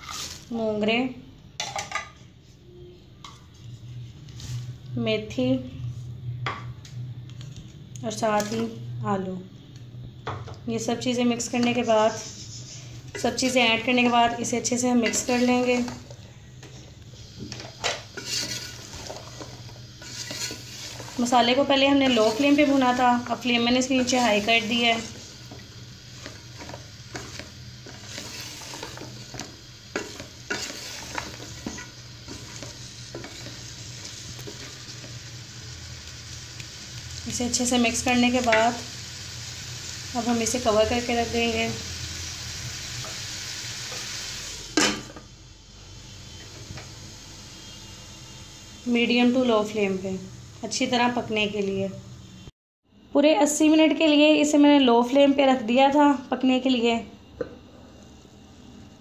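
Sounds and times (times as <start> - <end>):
vegetables sizzling in oil: 0.0 - 2.2, 7.4 - 52.5
spoon stirring and scraping: 15.0 - 16.9, 17.5 - 35.2.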